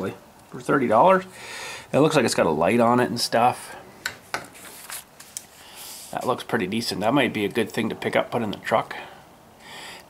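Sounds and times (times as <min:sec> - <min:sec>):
paper rustling: 0:04.5 - 0:06.4.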